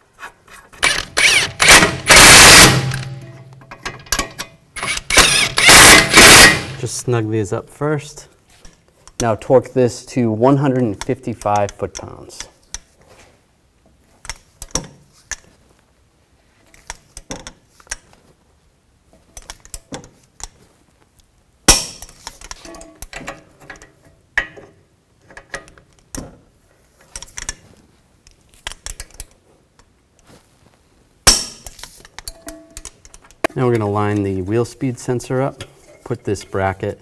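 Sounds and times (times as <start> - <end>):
torque wrench ratcheting clicks: 0.8 - 3.1, 4.8 - 6.8
sharp loud wrench clicks: 0.8 - 3.2, 4.1 - 6.8.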